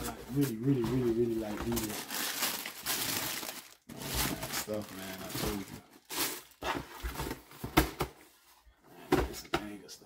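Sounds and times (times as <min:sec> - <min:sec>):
tissue paper rustling: 0:00.3 - 0:06.7.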